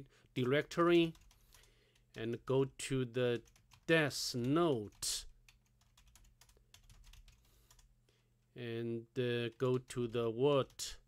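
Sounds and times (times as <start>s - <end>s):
faint keyboard typing: 0.4s - 2.6s, 3.3s - 7.9s, 9.4s - 11.0s.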